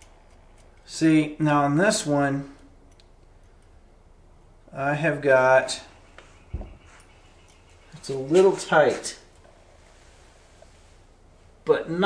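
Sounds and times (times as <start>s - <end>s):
light click of metal parts: 2.5s - 3.8s
short dull thump: 6.5s - 6.9s.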